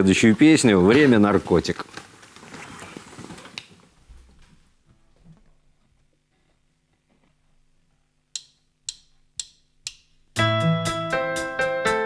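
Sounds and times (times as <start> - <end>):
drumsticks clicking: 8.3 - 10.3.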